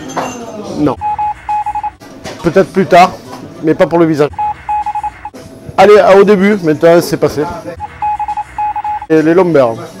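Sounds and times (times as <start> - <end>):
short electronic beeps: 1.0 - 2.0, 4.4 - 5.4, 7.8 - 9.2.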